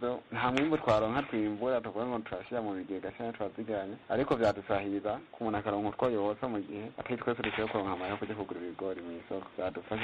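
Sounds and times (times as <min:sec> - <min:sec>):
radio news speech: 0:00.0 - 0:10.0.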